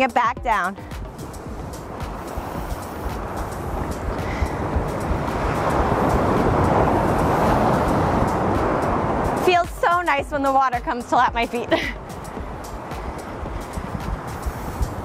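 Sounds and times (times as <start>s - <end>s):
ocean surf washing up beach: 0.7s - 15.0s.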